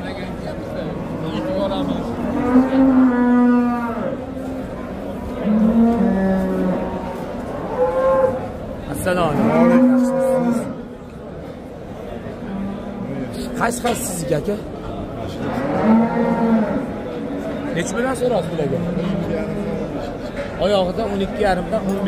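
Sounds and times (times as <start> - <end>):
cattle mooing: 1.0 - 4.2, 5.4 - 8.5, 9.2 - 10.8, 15.4 - 17.0.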